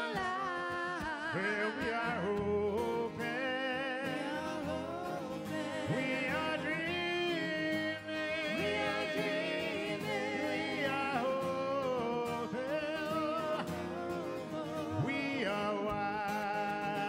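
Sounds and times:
acoustic guitar: 0.0s - 17.0s
man singing: 0.0s - 17.0s.

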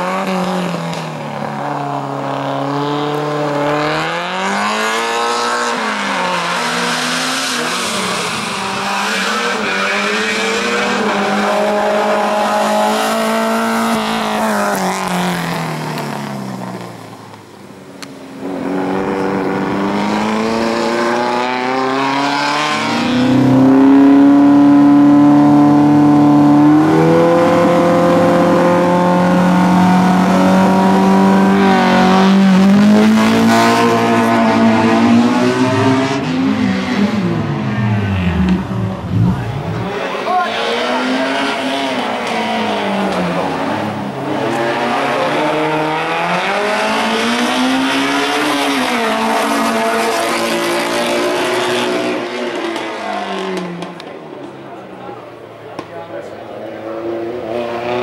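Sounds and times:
racing car engine revving: 0.0s - 17.2s, 18.0s - 58.0s.

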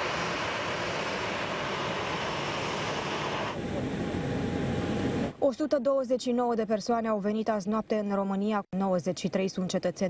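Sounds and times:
jet engines roaring: 0.0s - 5.4s.

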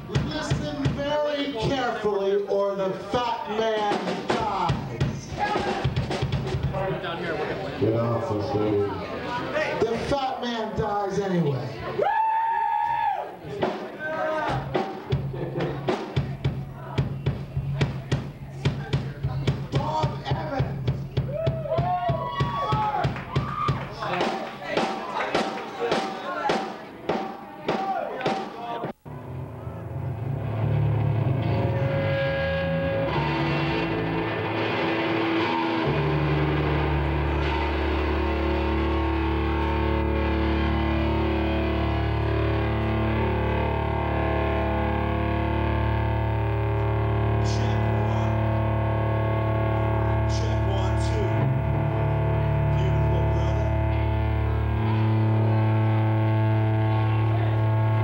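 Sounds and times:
distorted electric guitars and bass: 0.0s - 11.8s, 14.0s - 26.0s, 28.8s - 58.0s.

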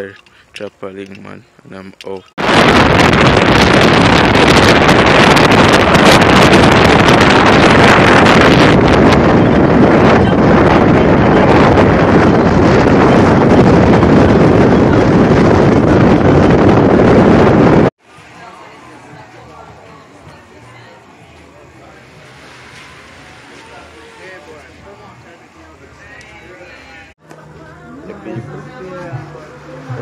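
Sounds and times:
wind buffeting microphone: 2.3s - 17.9s.

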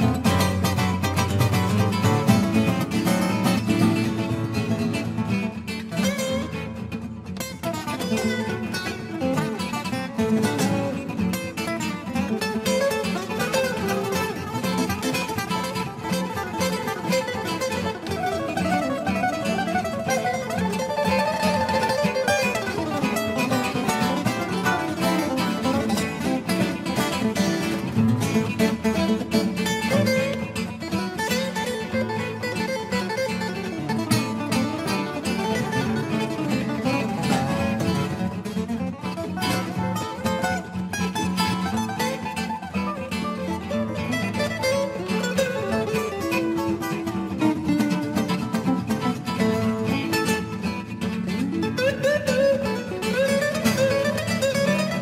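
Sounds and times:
acoustic guitars playing: 0.0s - 55.0s.

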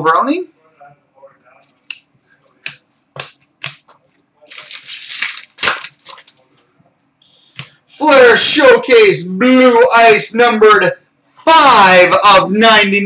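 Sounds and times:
cards snapping and flicking: 4.5s - 6.3s.

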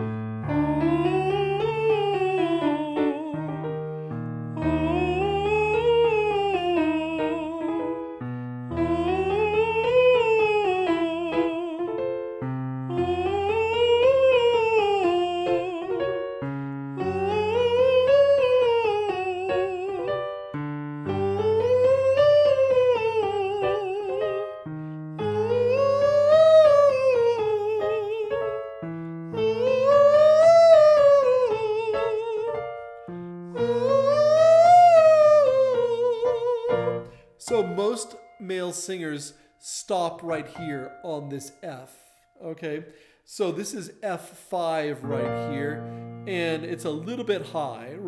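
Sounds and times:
man singing in falsetto: 0.6s - 3.6s, 4.6s - 8.0s, 8.8s - 12.0s, 12.9s - 16.3s, 17.0s - 20.3s, 21.1s - 24.6s, 25.2s - 28.6s, 29.3s - 32.8s, 33.6s - 42.1s.

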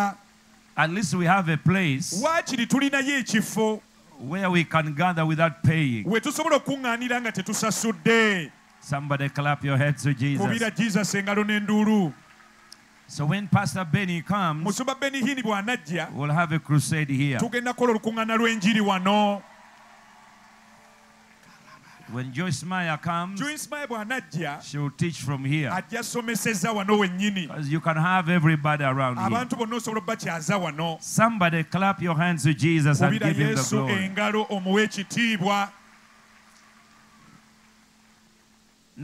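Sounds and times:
steady low hum: 0.0s - 19.4s
faint low hum: 0.0s - 39.0s
man's amplified voice: 0.8s - 12.2s, 13.1s - 19.4s, 22.1s - 35.7s.

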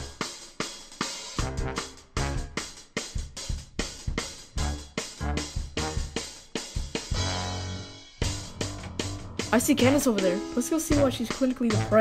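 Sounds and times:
drum-kit beat: 0.0s - 12.0s.

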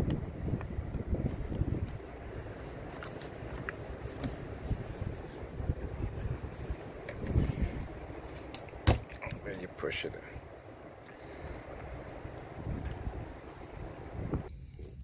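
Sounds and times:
low rumbling: 0.0s - 15.0s
dull thumps: 8.8s - 9.2s.

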